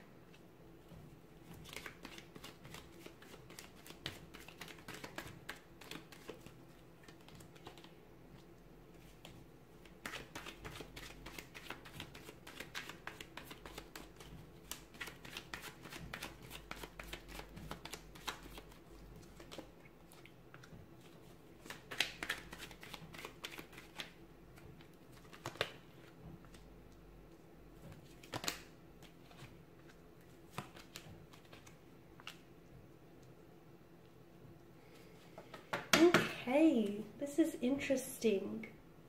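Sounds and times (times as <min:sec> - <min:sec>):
cards being shuffled: 0:01.5 - 0:08.0, 0:09.0 - 0:19.7, 0:20.5 - 0:24.1, 0:25.1 - 0:26.6, 0:27.8 - 0:32.4.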